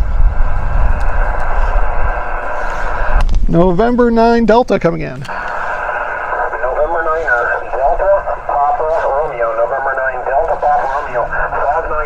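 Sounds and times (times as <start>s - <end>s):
steady receiver hiss: 0.9s - 12.0s
narrow-band radio speech: 3.1s - 12.0s.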